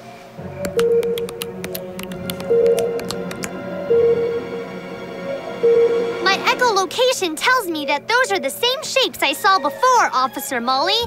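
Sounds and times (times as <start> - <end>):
suspenseful cartoon music: 0.4 - 10.9.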